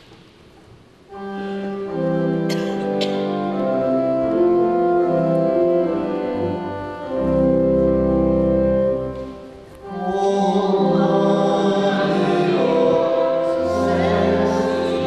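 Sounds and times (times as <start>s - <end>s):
church organ playing hymn chords: 1.1s - 15.0s
voices singing: 9.8s - 15.0s.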